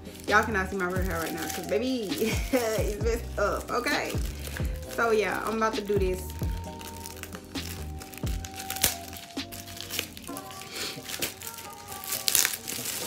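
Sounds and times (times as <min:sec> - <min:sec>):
background music: 0:00.0 - 0:13.0
packaging crinkling: 0:00.0 - 0:13.0.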